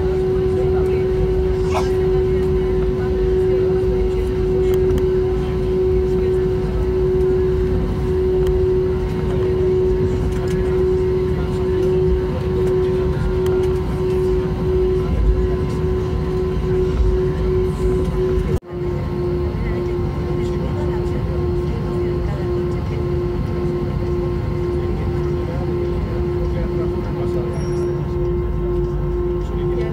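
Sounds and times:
airplane engines droning at idle: 0:00.0 - 0:29.9.

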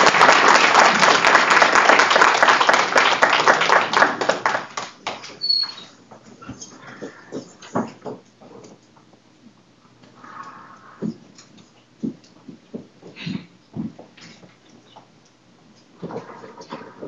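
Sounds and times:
audience applauding: 0:00.0 - 0:05.5.

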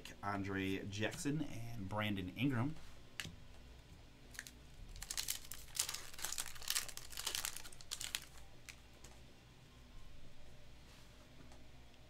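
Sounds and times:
foil wrapper crinkling and tearing: 0:04.3 - 0:08.8.

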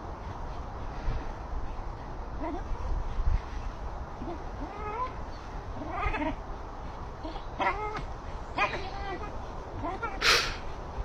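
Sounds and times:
dog whining: 0:04.2 - 0:06.4, 0:07.2 - 0:10.6.

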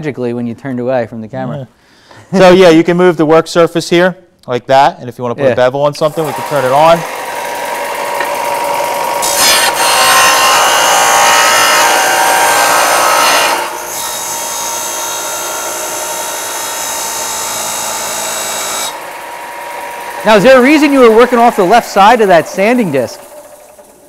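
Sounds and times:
bench sander humming: 0:06.1 - 0:24.0
metal grinding on sanding disc: 0:09.1 - 0:14.9, 0:20.0 - 0:23.3.

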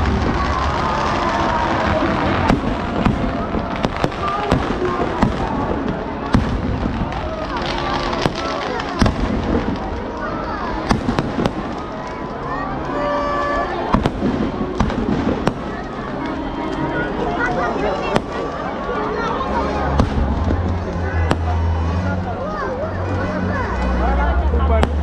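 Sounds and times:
low rumble: 0:00.0 - 0:08.2, 0:19.4 - 0:25.0
crowd shouting and chatter: 0:00.0 - 0:25.0
fireworks bangs and crackles: 0:00.0 - 0:25.0.

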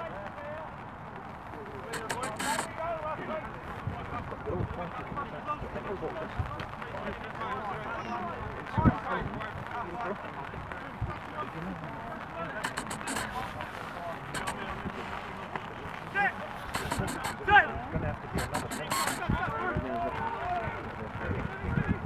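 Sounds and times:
short sharp knocks: 0:02.0 - 0:02.7, 0:12.6 - 0:13.3, 0:16.8 - 0:17.4, 0:18.4 - 0:19.3.

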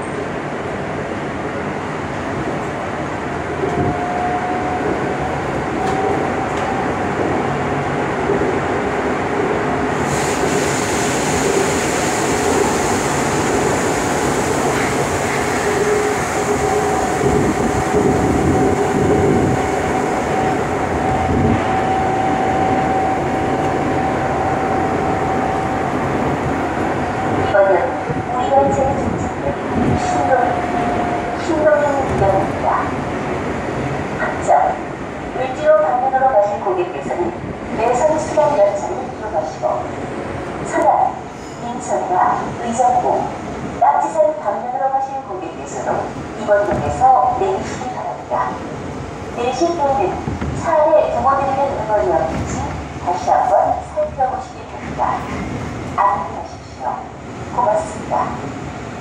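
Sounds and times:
subway train whine: 0:00.0 - 0:59.0.

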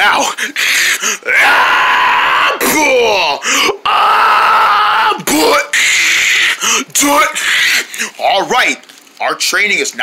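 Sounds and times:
person making high-pitched cries: 0:00.0 - 0:08.1.

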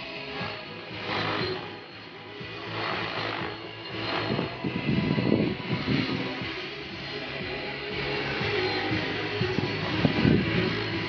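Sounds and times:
radio-controlled helicopter rotor: 0:00.0 - 0:07.4
music: 0:00.0 - 0:11.0.

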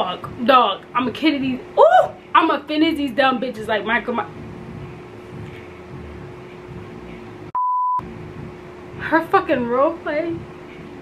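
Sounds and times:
high-pitched censor bleep: 0:07.5 - 0:08.0.

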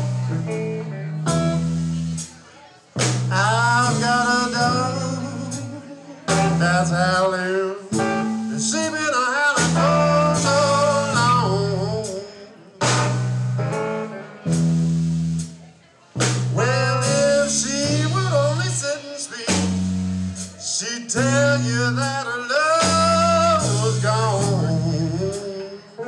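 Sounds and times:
live blues band playing: 0:00.0 - 0:26.0.

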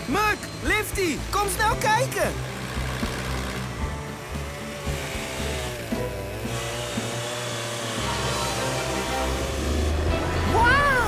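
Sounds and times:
background music: 0:00.0 - 0:11.0
chainsaw cutting wood: 0:01.3 - 0:10.5.

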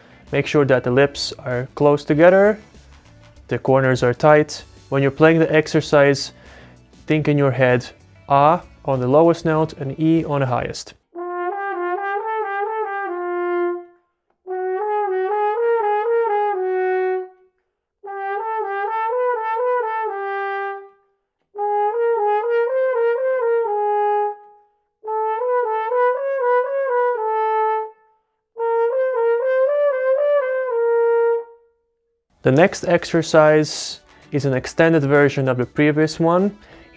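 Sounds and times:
french horn playing slurred notes: 0:11.2 - 0:17.4, 0:18.0 - 0:21.0, 0:21.6 - 0:28.0, 0:28.6 - 0:31.6.

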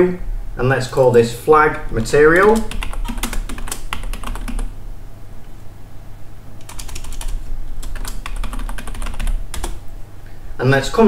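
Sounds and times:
low steady hum: 0:00.0 - 0:11.0
keyboard typing: 0:01.9 - 0:04.7, 0:06.6 - 0:09.8.

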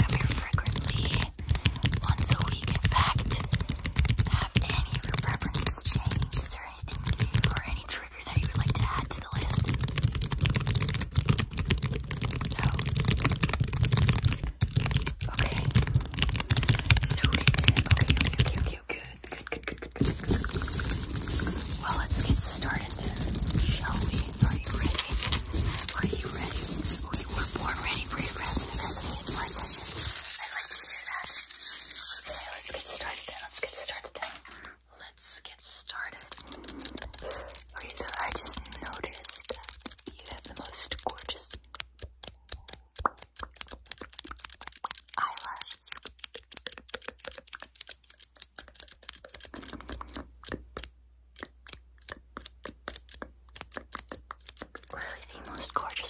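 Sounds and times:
person whispering: 0:00.0 - 0:10.9, 0:11.8 - 0:41.6, 0:45.1 - 0:46.2, 0:54.8 - 0:56.0
small clicks and rustles: 0:00.0 - 0:34.8, 0:35.6 - 0:56.0.

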